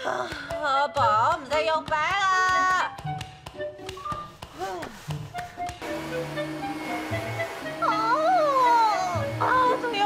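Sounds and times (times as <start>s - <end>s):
light comic music: 0.0s - 10.0s
vacuum cleaner running: 5.8s - 10.0s.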